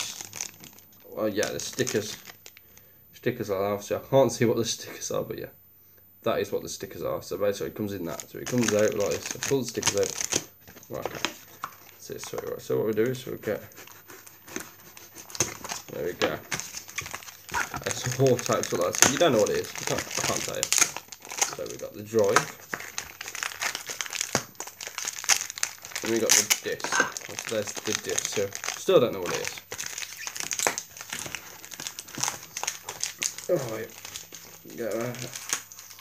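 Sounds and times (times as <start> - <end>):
plastic packaging crinkling: 0.0 - 2.8, 8.0 - 12.6, 13.8 - 36.0.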